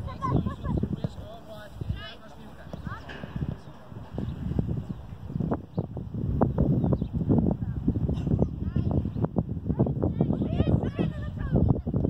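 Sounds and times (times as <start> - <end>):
dull low thumps: 2.7 - 12.0.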